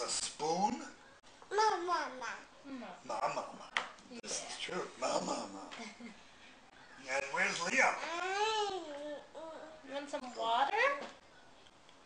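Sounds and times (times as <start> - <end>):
toddler whining: 8.0 - 9.8.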